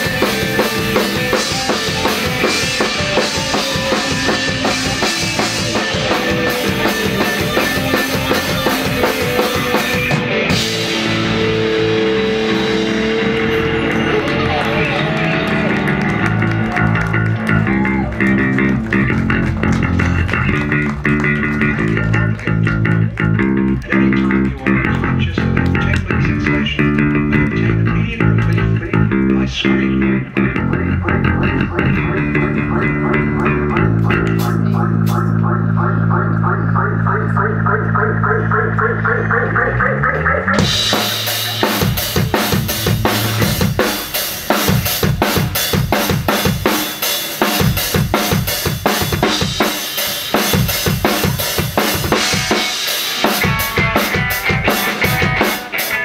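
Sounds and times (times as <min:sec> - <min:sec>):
drum kit with cymbal crashes: 0:00.0 - 0:15.2, 0:40.6 - 0:56.0
bass guitar riffs: 0:00.0 - 0:56.0
electric guitar riffs: 0:00.0 - 0:56.0.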